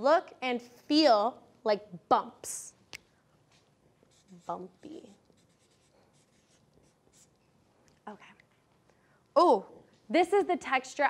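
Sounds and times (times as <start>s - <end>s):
marker writing on paper: 3.5s - 7.6s.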